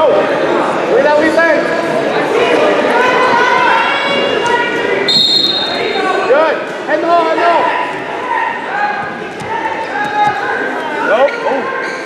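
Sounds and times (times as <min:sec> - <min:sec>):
whistle blown: 0:05.1 - 0:06.0.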